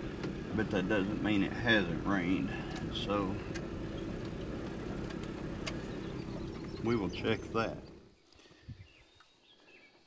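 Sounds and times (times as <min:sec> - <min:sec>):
truck engine idling: 0:00.0 - 0:08.2.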